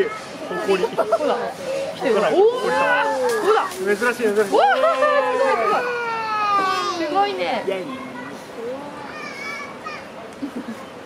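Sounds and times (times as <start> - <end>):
child's high voice: 8.0 - 10.1.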